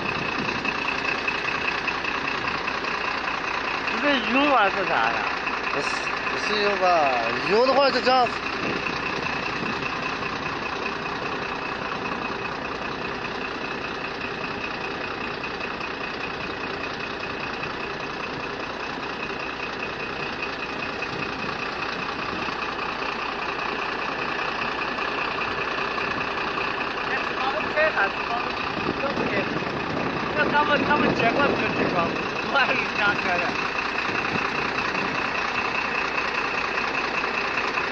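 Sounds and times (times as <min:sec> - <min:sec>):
vehicle engine running: 0:00.0 - 0:37.9.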